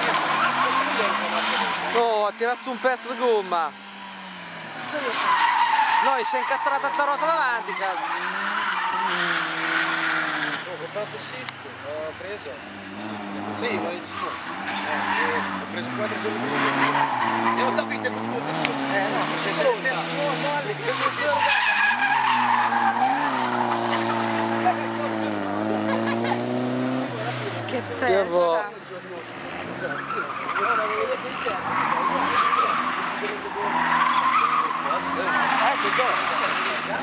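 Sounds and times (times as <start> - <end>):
car engine at high revs: 0.0 - 37.0
tyres screeching on wet asphalt: 0.0 - 37.0.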